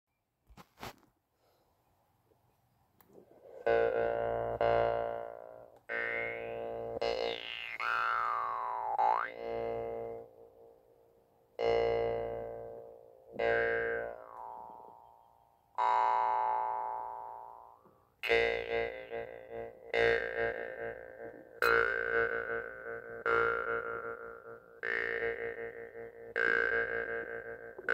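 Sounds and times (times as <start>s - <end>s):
jaw harp plucked: 3.3s - 10.8s, 11.6s - 15.2s, 15.8s - 27.9s.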